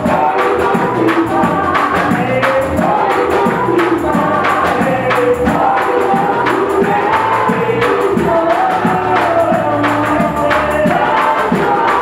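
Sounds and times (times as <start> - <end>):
congregation singing worship song: 0.0 - 12.0
people clapping along: 0.0 - 12.0.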